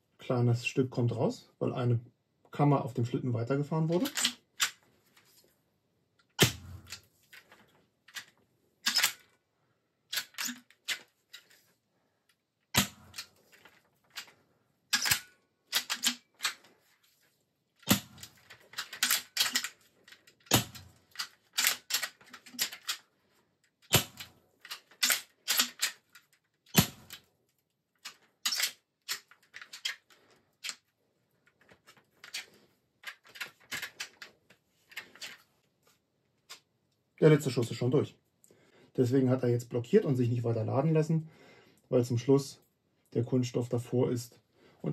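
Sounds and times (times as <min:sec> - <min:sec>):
rifle action clicks: 0:08.1 - 0:09.3, 0:10.1 - 0:11.0, 0:14.9 - 0:16.6, 0:17.8 - 0:19.8, 0:20.4 - 0:23.0, 0:23.9 - 0:26.0, 0:28.0 - 0:30.0
cocking lever clacks: 0:14.9 - 0:16.6.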